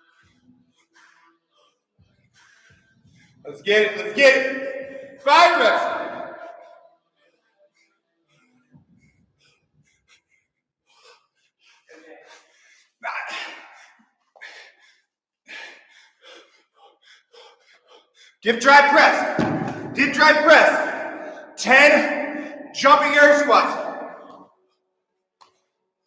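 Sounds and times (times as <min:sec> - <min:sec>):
man breathing hard in puffs: 0:00.0 - 0:03.6, 0:07.8 - 0:20.0, 0:20.8 - 0:22.8.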